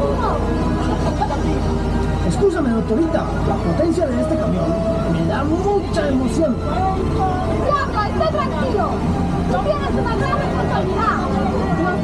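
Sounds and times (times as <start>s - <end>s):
ride vehicle rumble: 0.0s - 12.0s
voices chattering: 0.0s - 12.0s.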